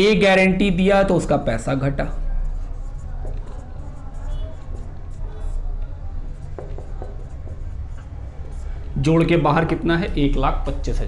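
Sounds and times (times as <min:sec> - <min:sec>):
marker writing on whiteboard: 0:00.0 - 0:10.9.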